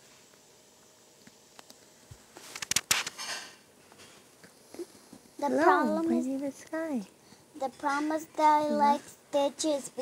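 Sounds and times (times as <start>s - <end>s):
sharp clicks and crackles: 2.5s - 3.3s.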